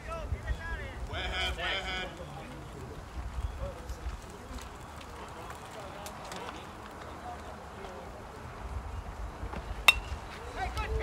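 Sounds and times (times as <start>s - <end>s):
players calling out: 0.0s - 8.4s
baseball crack: 9.5s - 11.0s.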